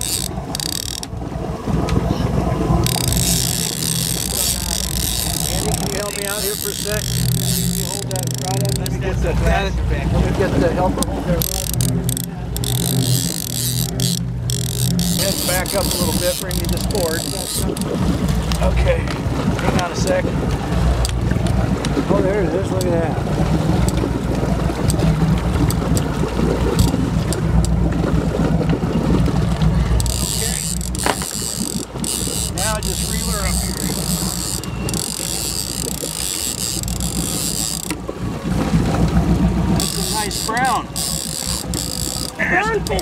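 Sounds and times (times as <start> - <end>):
scattered clicks: 0.0 - 1.1, 2.8 - 9.0, 11.0 - 18.6, 30.0 - 38.0
fishing reel whirring: 0.0 - 1.2, 2.7 - 9.3, 11.0 - 18.7, 24.8 - 27.8, 29.4 - 38.2, 38.9 - 43.0
boat engine running: 0.0 - 43.0
water wash: 0.0 - 43.0.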